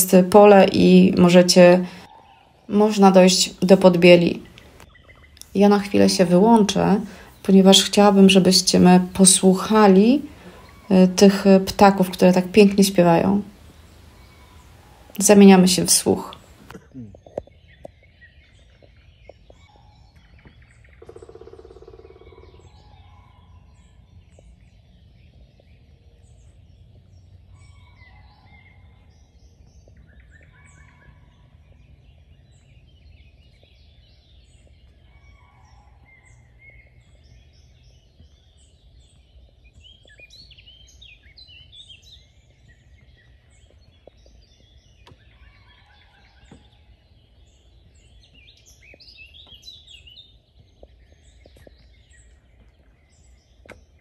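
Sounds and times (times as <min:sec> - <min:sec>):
songbirds chirping and trilling: 0:00.0 - 0:54.0.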